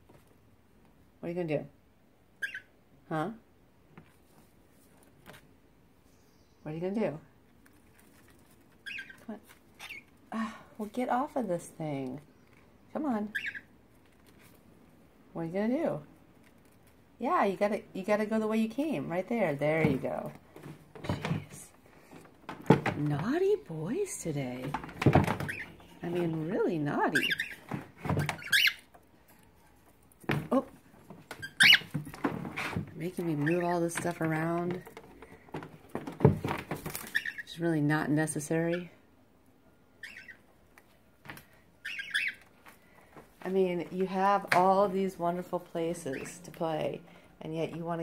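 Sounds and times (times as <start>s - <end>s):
cockatiel chirping: 2.4s - 2.7s, 8.8s - 9.2s, 13.3s - 13.7s, 27.2s - 27.6s, 28.2s - 28.9s, 31.4s - 31.9s, 40.0s - 40.4s, 41.8s - 42.4s
cockatiel chirps: 2.4s - 2.7s, 31.4s - 31.9s, 41.8s - 42.4s.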